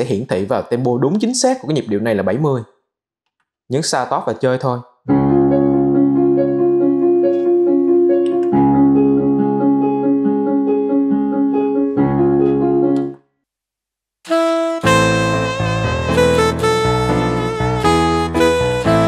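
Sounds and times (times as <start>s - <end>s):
keyboard chords over light rhythm: 5.1s - 13.2s, 14.3s - 19.0s
bright keyboard passage: 14.3s - 19.0s.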